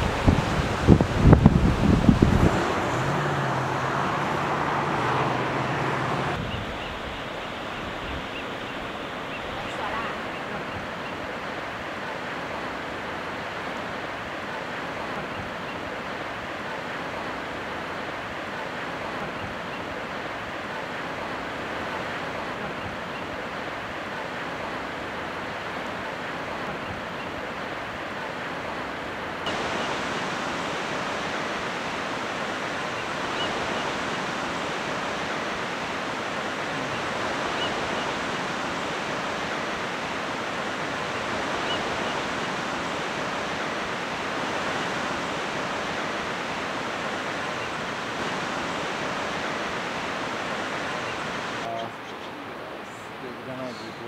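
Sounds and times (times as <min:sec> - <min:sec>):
ocean surf on rocks: 0:00.0 - 0:54.0.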